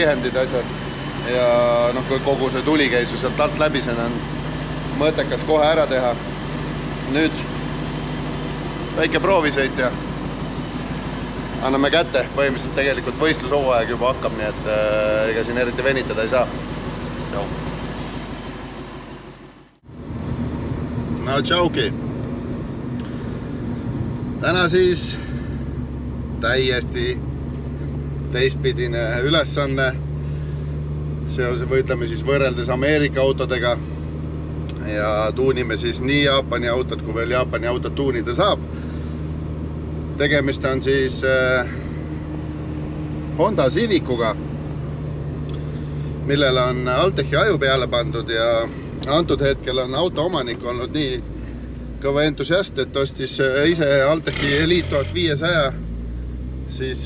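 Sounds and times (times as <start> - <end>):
car engine idling: 0.0 - 57.0
road noise: 0.0 - 57.0.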